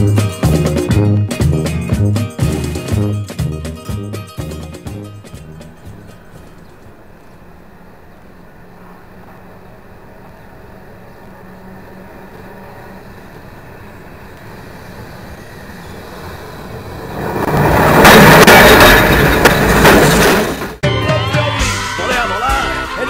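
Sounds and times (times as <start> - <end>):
tram rumbling on rails: 0.0 - 20.8.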